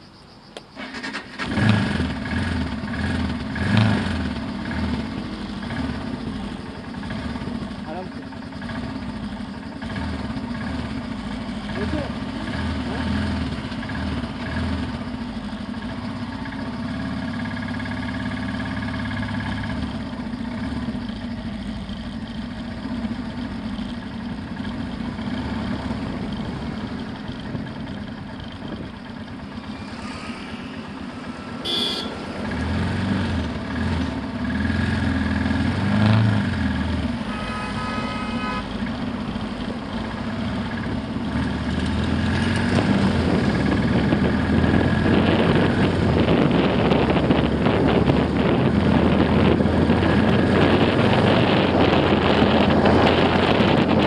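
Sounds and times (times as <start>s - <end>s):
motorcycle engine revving: 0.8s - 54.0s.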